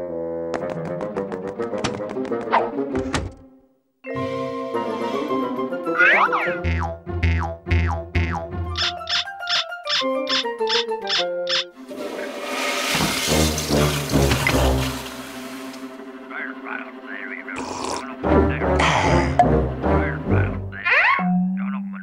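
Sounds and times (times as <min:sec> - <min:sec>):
cartoon music with plucked notes: 0:04.0 - 0:12.2.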